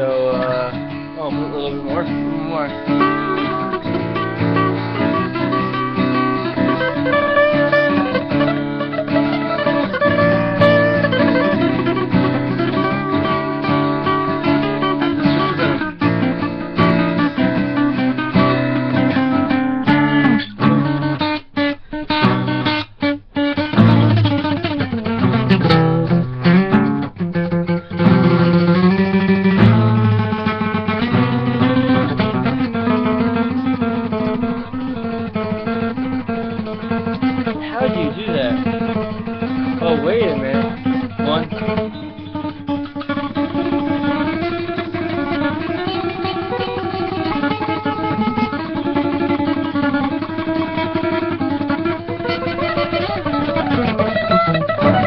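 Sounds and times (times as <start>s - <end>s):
acoustic guitar duet: 0.0s - 55.0s.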